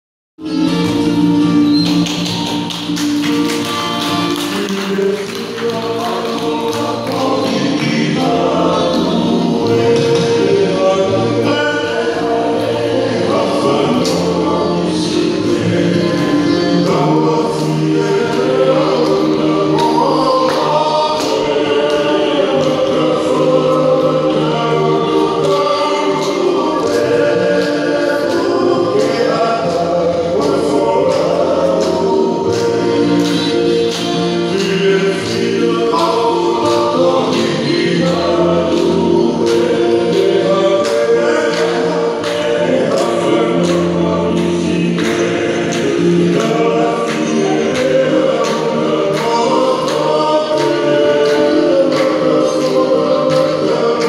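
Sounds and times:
group singing in harmony: 0.4s - 54.0s.

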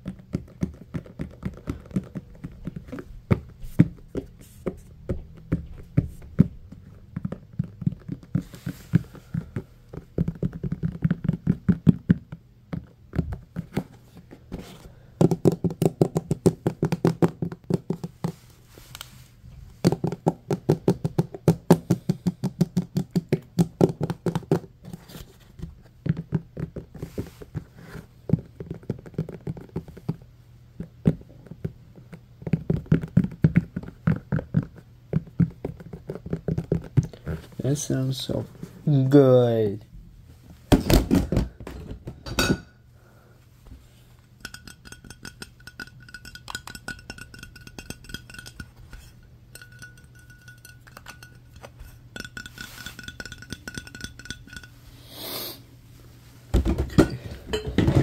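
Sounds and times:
fast finger-drumming on plastic: 0.0s - 13.8s, 15.2s - 18.4s, 19.8s - 24.7s, 28.3s - 37.2s
fingertips tapping on plastic tray: 0.0s - 14.3s, 15.2s - 18.4s, 19.8s - 25.0s, 25.6s - 27.7s, 28.3s - 37.2s, 44.4s - 54.7s.

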